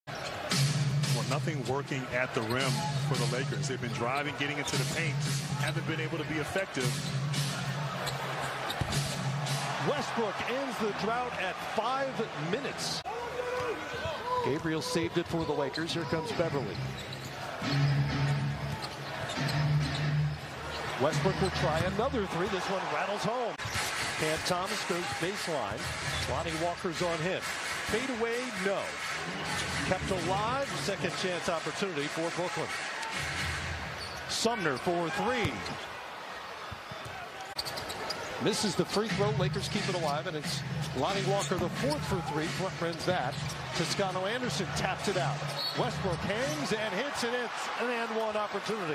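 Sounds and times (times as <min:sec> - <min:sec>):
basketball crowd noise: 0:00.0 - 0:48.9.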